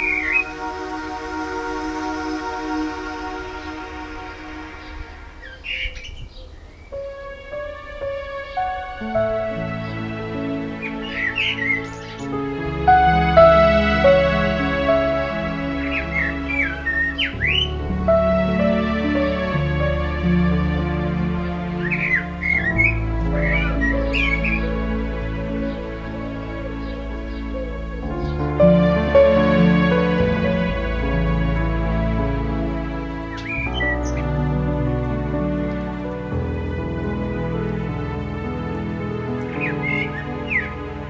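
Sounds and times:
soft music: 0:00.0 - 0:41.0
blackbird chirp: 0:04.8 - 0:07.1, 0:10.8 - 0:12.4, 0:15.9 - 0:17.7, 0:21.8 - 0:24.7, 0:33.3 - 0:34.3, 0:39.4 - 0:40.8.

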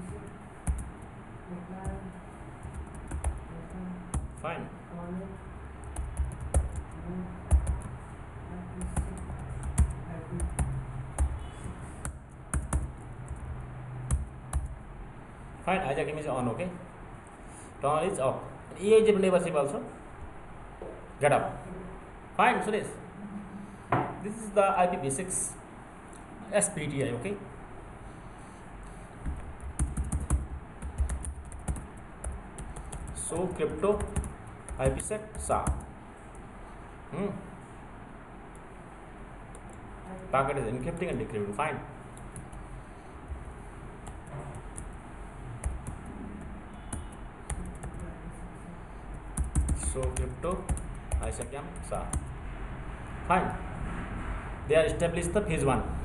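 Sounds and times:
computer keyboard typing: 0:00.0 - 0:01.1, 0:02.6 - 0:03.5, 0:04.1 - 0:04.4, 0:05.8 - 0:08.0, 0:08.7 - 0:14.8, 0:29.2 - 0:36.4, 0:42.2 - 0:42.7, 0:44.0 - 0:45.0, 0:45.6 - 0:48.2, 0:49.1 - 0:52.4.

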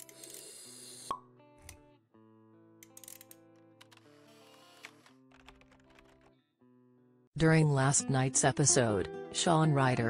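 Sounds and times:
soft sustained music: 0:07.4 - 0:10.0.

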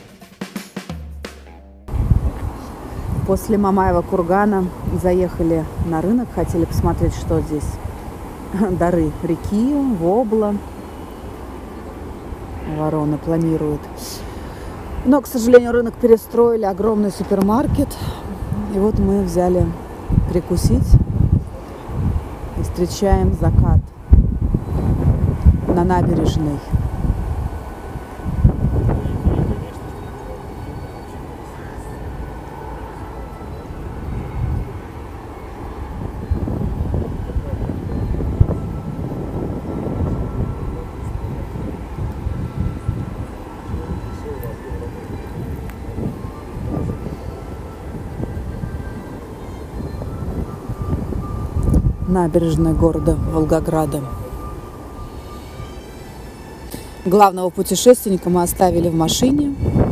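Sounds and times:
wind buffeting microphone: 0:01.9 - 0:59.9.

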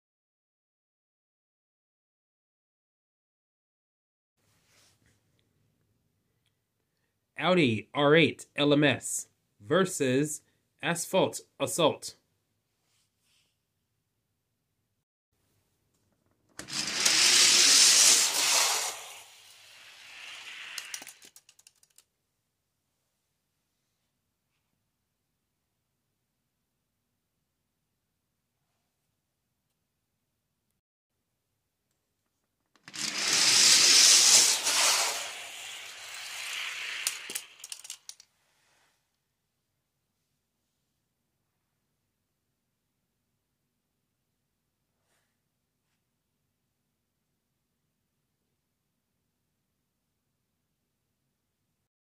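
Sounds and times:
quick clicks of toy cars: 0:16.5 - 0:22.1, 0:32.7 - 0:38.3
toy car wheels rattling on track: 0:16.6 - 0:22.0, 0:32.8 - 0:38.2
sharp clicks: 0:20.7 - 0:22.0.

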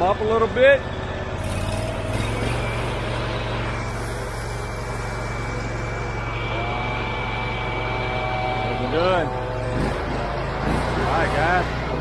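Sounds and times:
pressure washer engine running: 0:00.0 - 0:12.0.

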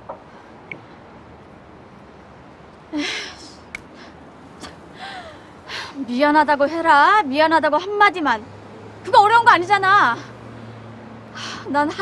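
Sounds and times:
woman speaking: 0:06.0 - 0:08.4, 0:09.1 - 0:10.2, 0:11.7 - 0:12.0.

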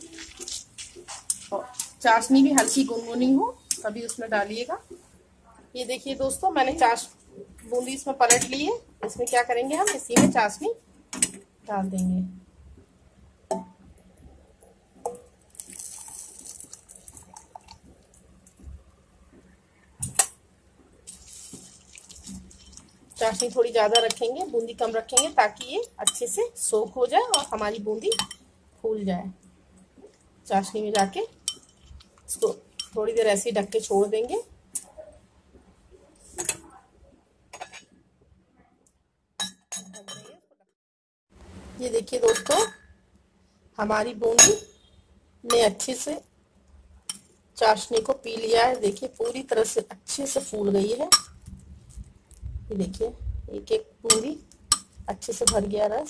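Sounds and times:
syrup pouring and dripping: 0:15.1 - 0:18.8, 0:21.1 - 0:23.2
glass clinking on glass: 0:39.4 - 0:40.4, 0:44.4 - 0:44.8.

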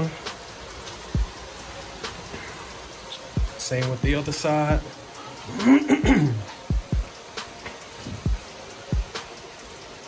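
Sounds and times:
rain hissing: 0:00.0 - 0:10.0.

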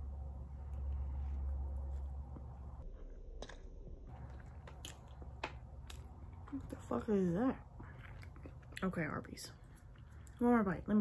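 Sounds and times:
chewing crispy food: 0:04.1 - 0:11.0.

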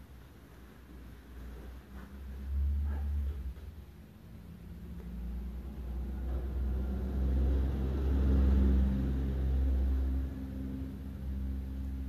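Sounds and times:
passing vehicle rumble: 0:01.8 - 0:12.0.

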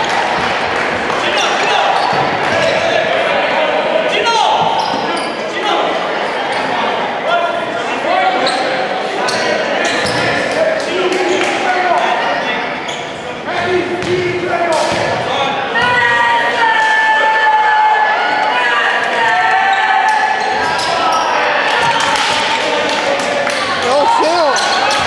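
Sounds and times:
voices calling out: 0:18.2 - 0:25.0.

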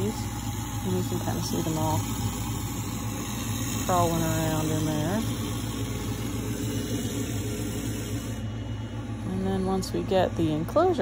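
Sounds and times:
low machine hum: 0:00.0 - 0:11.0.

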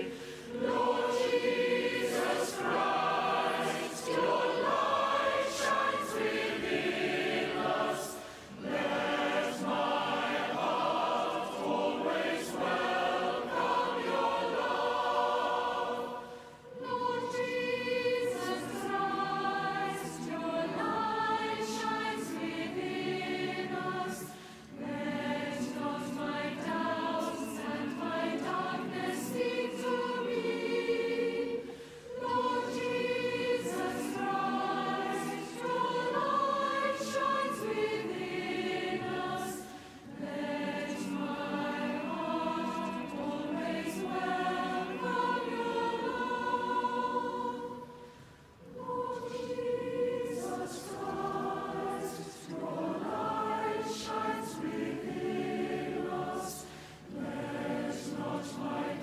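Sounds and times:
choir singing sacred music: 0:00.0 - 0:59.0.

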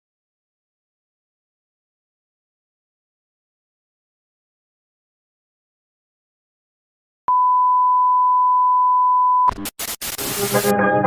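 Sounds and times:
high electronic beep: 0:07.3 - 0:09.7
burst of hiss: 0:09.6 - 0:10.7
music with sustained notes: 0:10.5 - 0:11.0.

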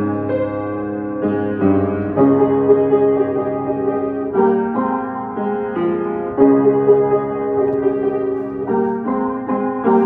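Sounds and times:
upright piano notes and chords: 0:00.0 - 0:10.0.

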